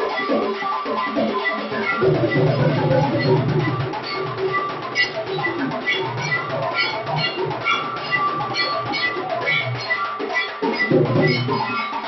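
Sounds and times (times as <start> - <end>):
drums beaten in steady rhythm: 0.0 - 12.0
metallic bell tones: 0.0 - 12.0.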